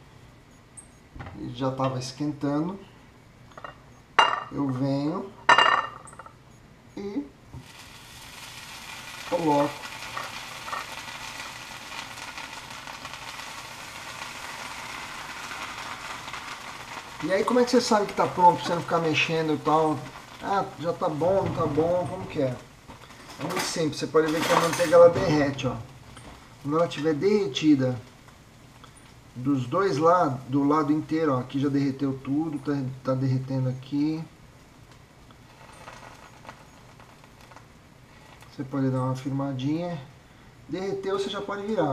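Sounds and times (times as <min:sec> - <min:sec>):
faint crackles: 0:07.0 - 0:39.6
bread sizzling in sandwich maker: 0:07.5 - 0:39.8.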